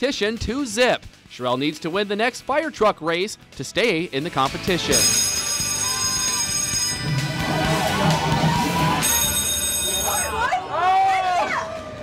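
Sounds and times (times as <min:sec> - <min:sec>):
game music: 0:04.6 - 0:10.5
electronic game ringing: 0:04.9 - 0:07.8, 0:09.0 - 0:10.5
crowd chatter: 0:07.0 - 0:12.0
person shouting excitedly: 0:10.4 - 0:11.8.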